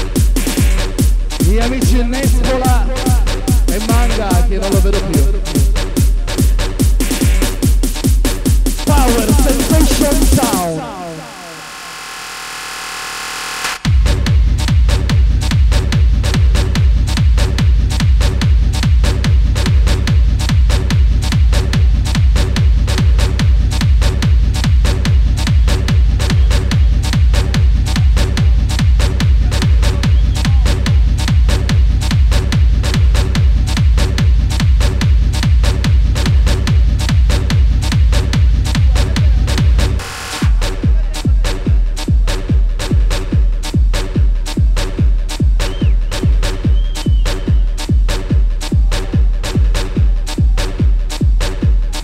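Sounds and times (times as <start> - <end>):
electronic dance music: 0.0 - 52.0.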